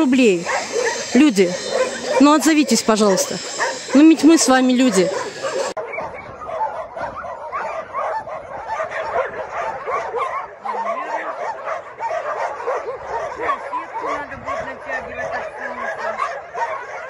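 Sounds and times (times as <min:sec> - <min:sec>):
many dogs barking: 0:00.0 - 0:17.0.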